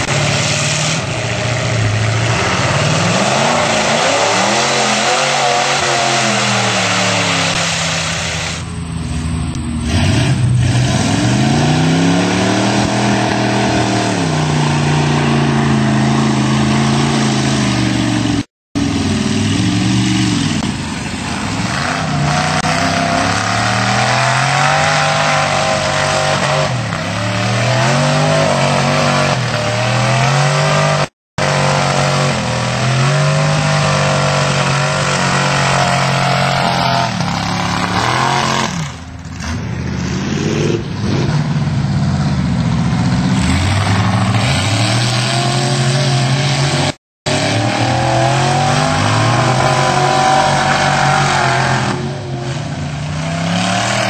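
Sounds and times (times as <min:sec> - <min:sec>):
truck engines revving: 0:00.0 - 0:54.0.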